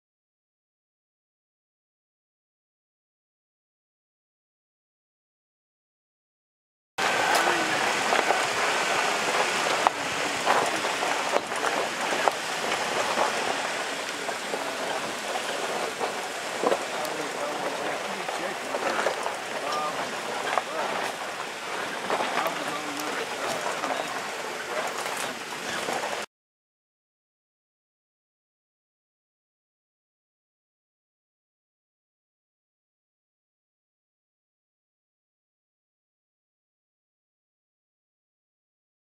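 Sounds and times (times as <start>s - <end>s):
faint muffled voices: 7.0s - 26.2s
outdoor noise rush: 7.0s - 26.3s
scattered crackles: 7.0s - 26.3s.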